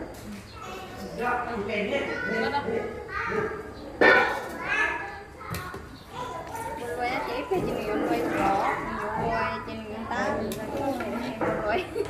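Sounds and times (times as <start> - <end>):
people talking: 0.3 - 12.0
child's voice: 2.1 - 3.8, 4.4 - 10.5.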